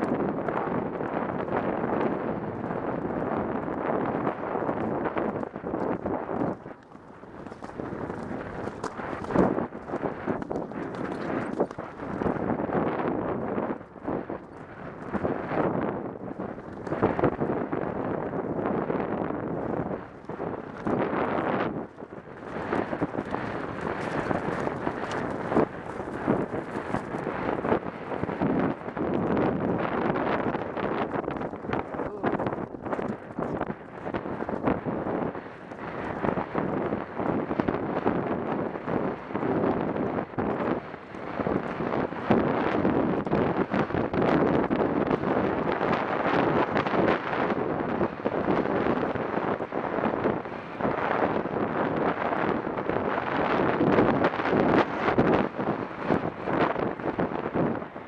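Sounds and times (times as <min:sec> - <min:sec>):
hoofbeats on grass: 0:00.0 - 0:43.4
wind buffeting microphone: 0:00.0 - 0:58.0.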